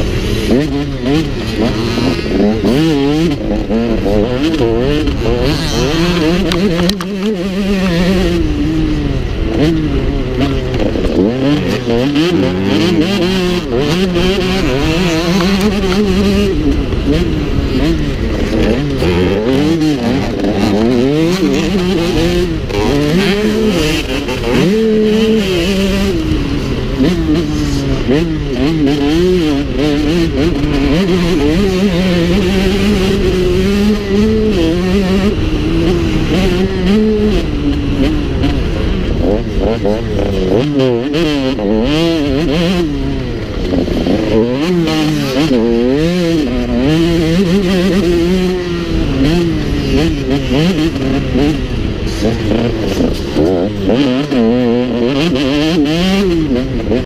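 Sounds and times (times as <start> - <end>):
motocross bike engine revving: 0.0 - 57.0.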